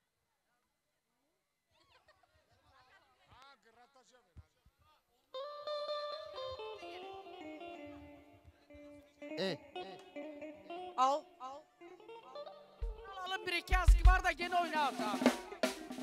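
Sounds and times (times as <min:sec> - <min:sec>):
electric guitar melody: 0:05.4 - 0:11.4
person calling out: 0:09.4 - 0:09.6
drum: 0:12.8 - 0:16.0.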